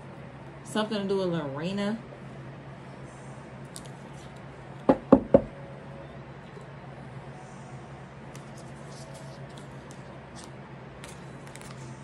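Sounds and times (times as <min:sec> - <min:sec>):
knocking by hand: 0:04.9 - 0:05.5.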